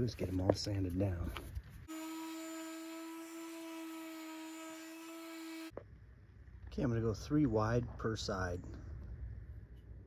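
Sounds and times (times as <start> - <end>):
electric sander on wood: 1.9 - 5.7.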